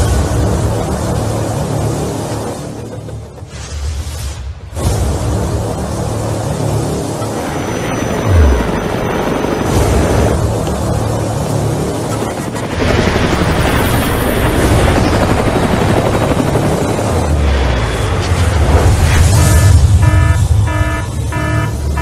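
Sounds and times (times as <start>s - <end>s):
action film music: 0.0s - 22.0s
helicopter rotor chopping: 0.2s - 3.6s, 6.9s - 18.1s.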